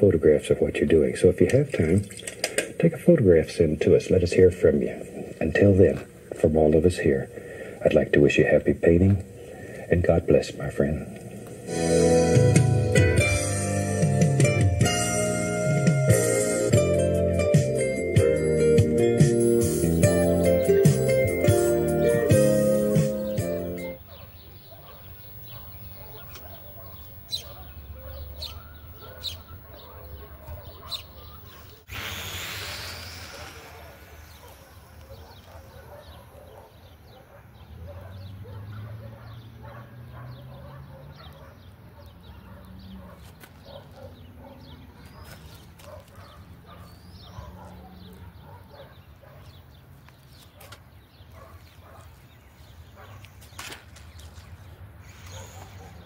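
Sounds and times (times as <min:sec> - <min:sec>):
faint outdoor background: 0:00.0 - 0:56.0
model plane whoosh: 0:31.9 - 0:35.0.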